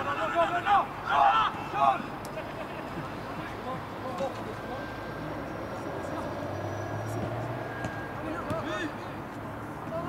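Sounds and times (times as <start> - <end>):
players shouting and calling: 0.0 - 10.0.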